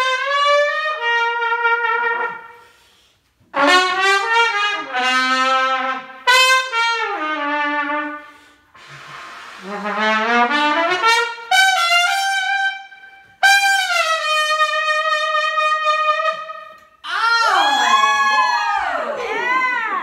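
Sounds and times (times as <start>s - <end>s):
solo trumpet: 0.0s - 2.8s, 3.5s - 17.0s.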